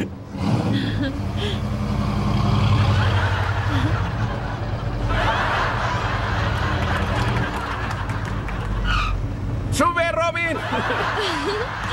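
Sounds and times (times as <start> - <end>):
car engine running: 0.0 - 11.9.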